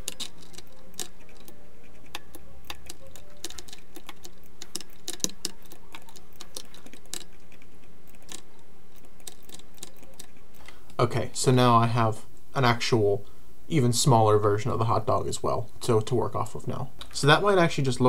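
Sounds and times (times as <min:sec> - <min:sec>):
keyboard keys clicking: 0:00.0 - 0:10.4
mouse clicking: 0:00.0 - 0:11.0.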